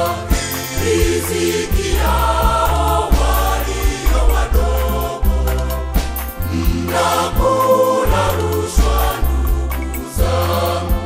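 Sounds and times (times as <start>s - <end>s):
choir singing gospel in harmony: 0.0s - 11.0s
steady beat: 0.0s - 11.0s
sustained bass notes: 0.0s - 11.0s.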